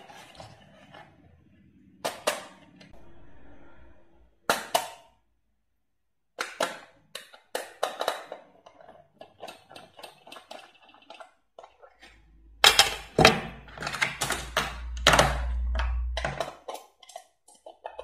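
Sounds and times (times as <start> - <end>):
low handling rumble: 14.2 - 16.3.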